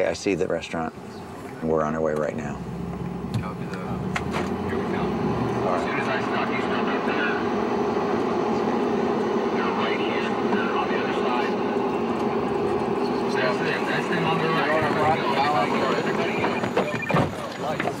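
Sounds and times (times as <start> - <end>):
car engine and road noise: 0.0 - 18.0
indistinct voices: 3.3 - 18.0.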